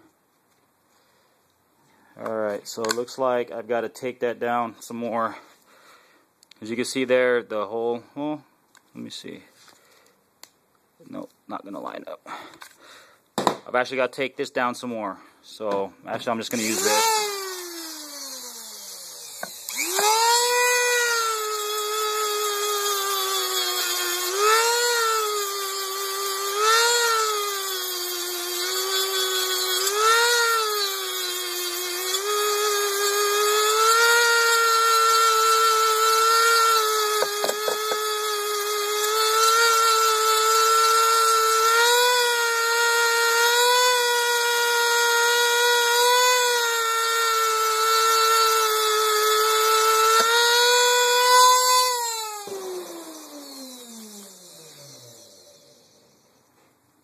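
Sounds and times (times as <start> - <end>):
rotary tool grinding: 16.5 - 56.4.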